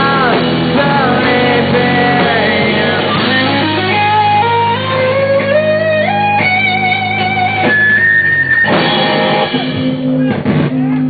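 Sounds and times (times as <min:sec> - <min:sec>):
electric guitar sliding notes: 0:00.0 - 0:11.0
live rock band music: 0:00.0 - 0:11.0.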